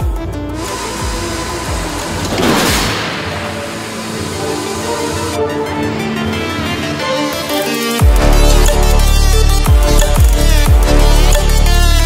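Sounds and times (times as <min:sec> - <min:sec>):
electronic music with deep bass: 0:00.0 - 0:12.0
loud rushing crash: 0:02.2 - 0:04.2.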